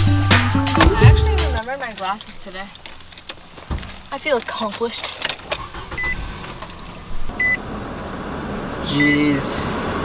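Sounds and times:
car engine starting and idling: 0:00.0 - 0:10.0
car dashboard chime beeping: 0:05.9 - 0:06.2, 0:07.3 - 0:07.6, 0:08.9 - 0:09.3.

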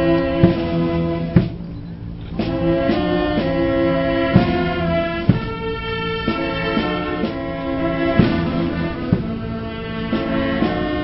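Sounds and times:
brass band playing chords: 0:00.0 - 0:11.0.

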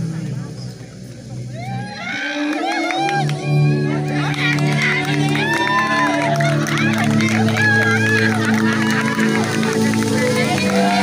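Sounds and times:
people talking and calling out: 0:00.0 - 0:11.0.

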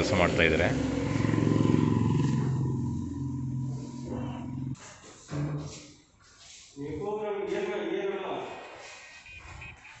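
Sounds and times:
engine drone: 0:00.0 - 0:04.8.

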